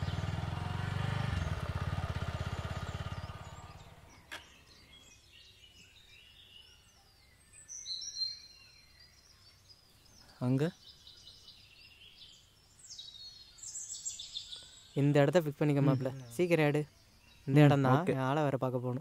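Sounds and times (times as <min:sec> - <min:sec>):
motorcycle engine idling: 0:00.0 - 0:05.0
birds chirping: 0:00.0 - 0:19.0.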